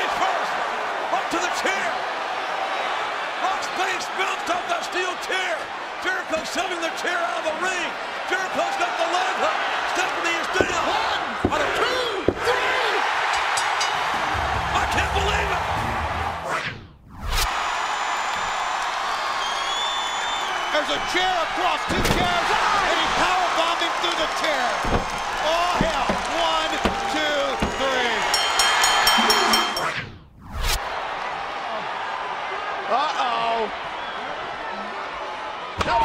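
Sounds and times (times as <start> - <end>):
arena crowd noise: 0.0 - 16.7, 17.4 - 30.0, 30.8 - 36.0
bell clanging rapidly: 13.3 - 15.0, 26.0 - 30.0.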